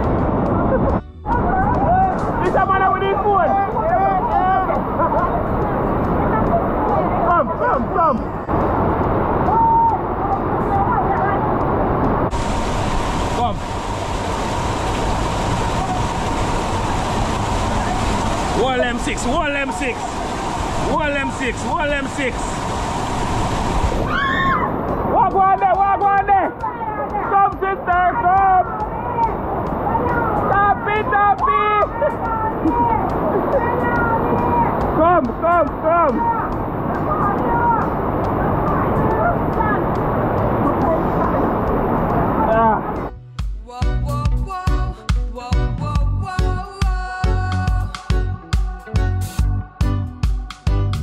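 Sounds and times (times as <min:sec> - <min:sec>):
people's voices: 0:00.0 - 0:11.8, 0:15.7 - 0:22.6, 0:24.1 - 0:43.1
water rushing down rock cascade: 0:01.4 - 0:43.1.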